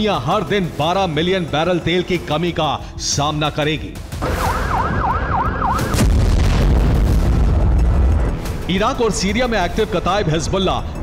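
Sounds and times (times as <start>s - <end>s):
electronic siren yelping: 4.2s - 6.0s
low rumble: 4.2s - 8.7s.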